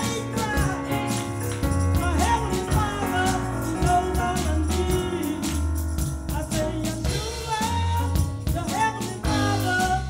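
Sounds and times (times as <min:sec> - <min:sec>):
drums: 0:00.0 - 0:10.0
electric bass: 0:00.0 - 0:10.0
woman singing gospel: 0:00.0 - 0:10.0.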